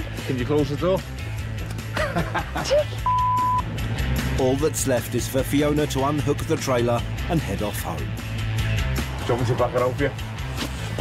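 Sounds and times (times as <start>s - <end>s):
background music: 0.0s - 11.0s
person laughing: 1.9s - 3.0s
electronic bleep tone: 3.0s - 3.6s.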